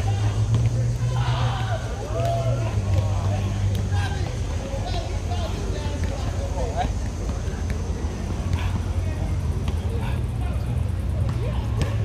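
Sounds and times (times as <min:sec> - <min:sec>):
faint voices: 0:00.0 - 0:12.0
traffic rumble: 0:00.0 - 0:12.0.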